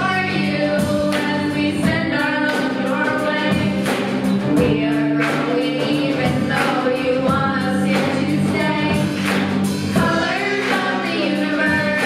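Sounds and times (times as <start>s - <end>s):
bass guitar: 0.0s - 12.0s
drums with cymbal hits: 0.0s - 12.0s
electric guitar: 0.0s - 12.0s
girls singing together: 0.0s - 12.0s
keyboard: 0.0s - 12.0s.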